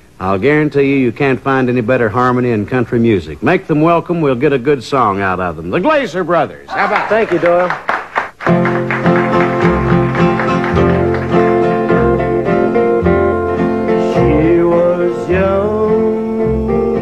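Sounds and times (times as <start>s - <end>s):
country band playing: 8.2s - 17.0s
sliding guitar notes: 8.5s - 17.0s.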